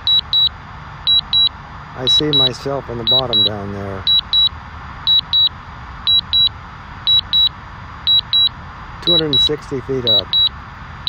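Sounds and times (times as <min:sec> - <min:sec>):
remote controller double beep: 0:00.0 - 0:00.5, 0:01.1 - 0:01.5, 0:02.1 - 0:04.5, 0:05.1 - 0:05.5, 0:06.1 - 0:06.5, 0:07.1 - 0:07.5, 0:08.1 - 0:08.5, 0:09.1 - 0:10.5.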